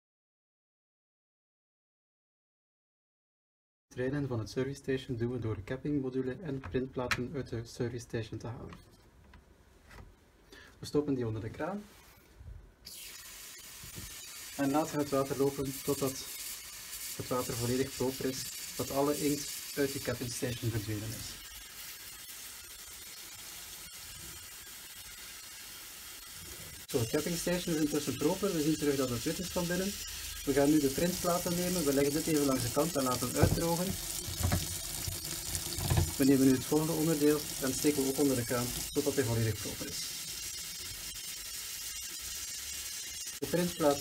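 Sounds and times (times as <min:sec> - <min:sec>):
tap water running into sink: 0:27.9 - 0:40.7
tap running into metal sink: 0:33.2 - 0:34.8, 0:35.5 - 0:36.2.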